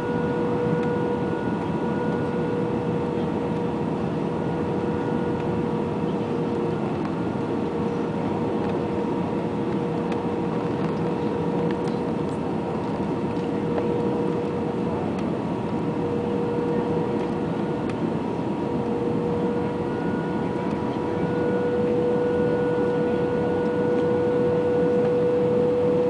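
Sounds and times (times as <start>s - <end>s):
aircraft cabin rumble: 0.0s - 26.0s
constant engine whine: 0.0s - 26.0s.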